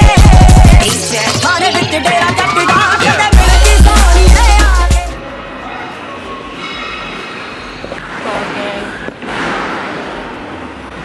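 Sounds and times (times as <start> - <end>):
music: 0.0 - 5.6
background rumble of large gym: 0.0 - 11.0.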